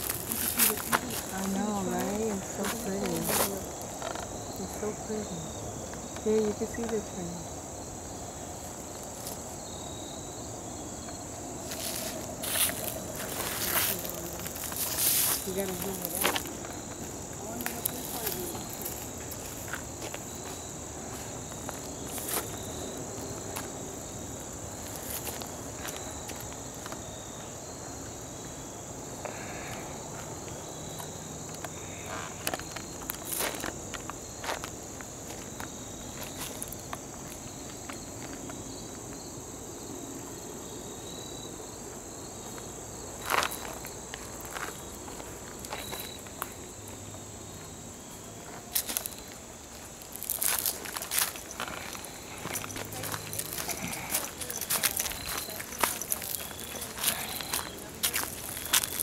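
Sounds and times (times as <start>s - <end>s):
footsteps on dirt trail: 0.0s - 6.3s, 11.0s - 27.8s, 29.3s - 39.3s, 42.2s - 59.0s
crickets trilling: 0.0s - 59.0s.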